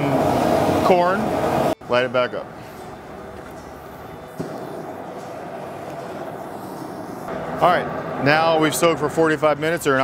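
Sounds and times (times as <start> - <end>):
gas burner rushing rumble: 0.0 - 1.8, 2.5 - 9.3.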